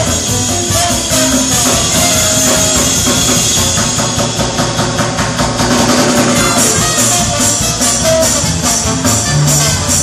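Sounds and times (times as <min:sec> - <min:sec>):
trumpet: 0:00.0 - 0:04.6, 0:05.8 - 0:10.0
live band: 0:00.0 - 0:10.0
trombone: 0:00.0 - 0:10.0.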